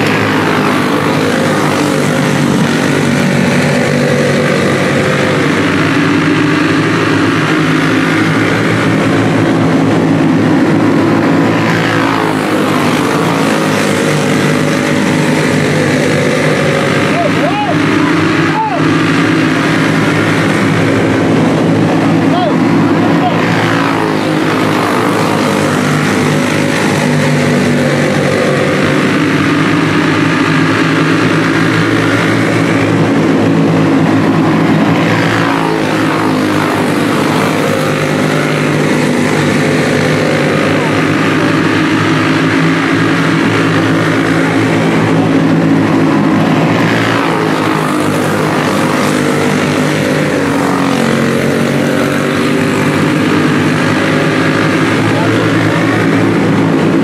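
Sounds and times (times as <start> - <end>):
kart engines droning: 0.0 - 57.0.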